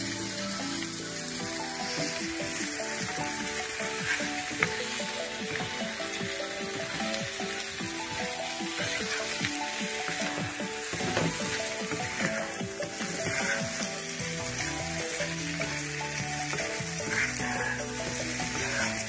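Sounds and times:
background music: 0.0s - 19.0s
potatoes sizzling in oil: 0.0s - 19.0s
wooden spatula scraping wok: 1.8s - 19.0s.

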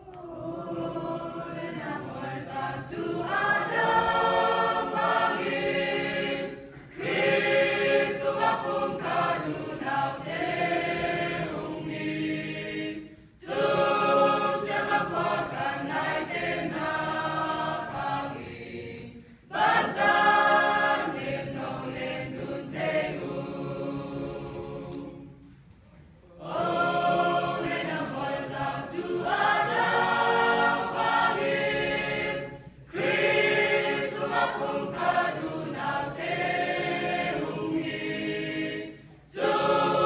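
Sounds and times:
mixed choir singing a hymn: 0.0s - 25.5s, 26.3s - 40.0s.

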